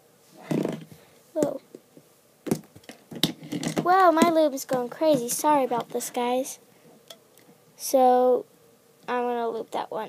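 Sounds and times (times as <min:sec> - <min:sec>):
girl speaking: 0:01.4 - 0:01.6, 0:03.8 - 0:06.6, 0:07.8 - 0:08.5, 0:09.1 - 0:10.0.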